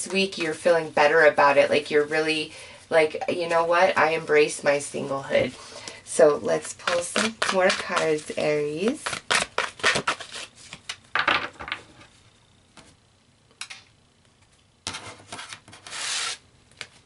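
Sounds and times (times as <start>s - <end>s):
cards sliding: 15.3s - 17.0s.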